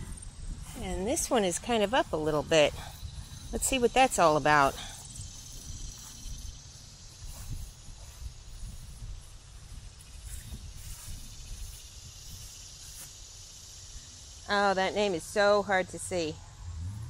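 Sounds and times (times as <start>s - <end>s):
wind rumbling on microphone: 0.0s - 13.0s
insects hissing: 0.0s - 16.8s.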